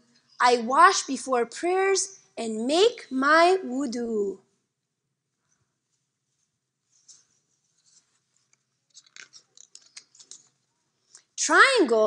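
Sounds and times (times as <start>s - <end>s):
book pages rustling: 6.3s - 11.3s.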